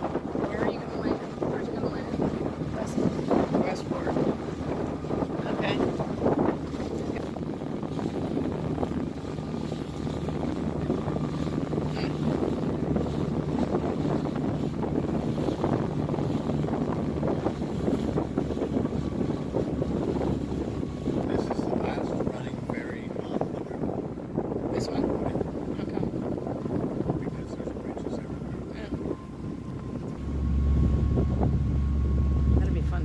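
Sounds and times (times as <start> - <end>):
ferry engine humming: 0.0 - 33.0
river water rushing along hull: 0.0 - 33.0
wind buffeting microphone: 0.0 - 33.0.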